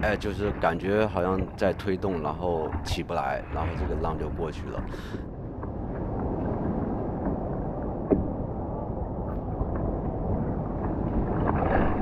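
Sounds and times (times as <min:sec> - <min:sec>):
wind rumbling on microphone: 0:00.0 - 0:12.0
water lapping around a surfboard: 0:09.3 - 0:12.0.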